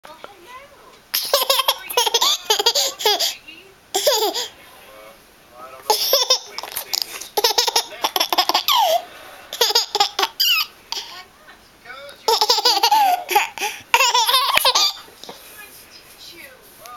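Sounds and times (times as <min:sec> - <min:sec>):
toddler giggling: 0:01.2 - 0:04.5, 0:05.9 - 0:06.8, 0:07.4 - 0:11.2, 0:12.3 - 0:15.1.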